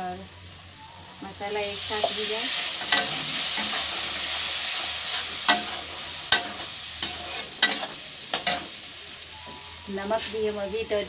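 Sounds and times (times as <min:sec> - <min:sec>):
masala sizzling in a pan: 0:00.0 - 0:11.0.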